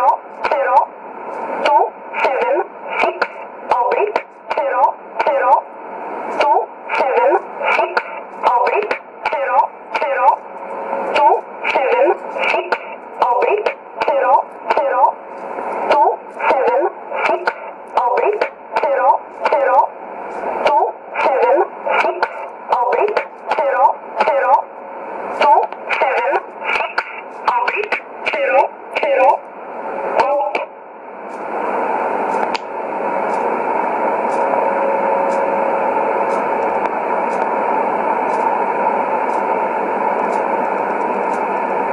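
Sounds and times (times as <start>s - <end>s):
tinny radio voice reading digits: 0.0s - 30.8s
radio hiss: 0.0s - 41.9s
static clicks: 0.0s - 41.9s.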